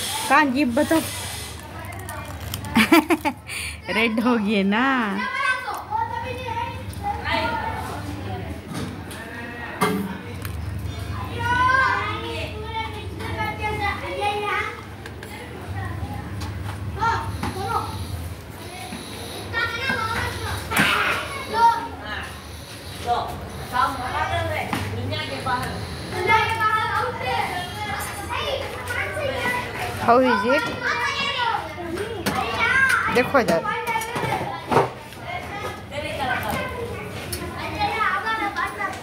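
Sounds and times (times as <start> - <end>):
young children chattering: 0.0 - 39.0
young child's voice: 26.2 - 39.0.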